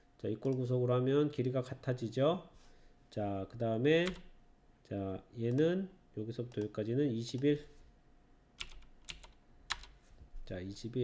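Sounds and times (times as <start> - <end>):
computer keyboard keys tapping: 4.0 - 4.3, 8.6 - 10.0.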